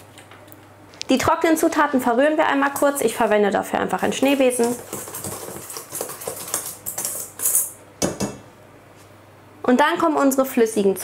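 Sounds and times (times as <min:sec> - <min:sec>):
wire whisk scraping a bowl: 0:04.0 - 0:07.8.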